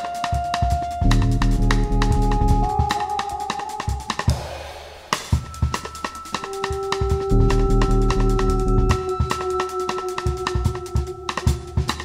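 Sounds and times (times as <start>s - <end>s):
jazz drum kit playing: 0.0s - 12.0s
cymbal wash: 1.0s - 12.0s
high held note: 1.0s - 12.0s.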